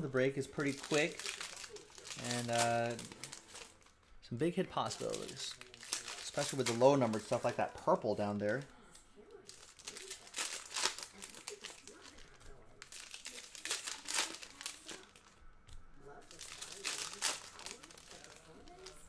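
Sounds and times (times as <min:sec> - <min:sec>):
foil wrappers crinkling: 0:00.4 - 0:04.0, 0:04.7 - 0:08.7, 0:09.4 - 0:15.4, 0:16.1 - 0:19.0.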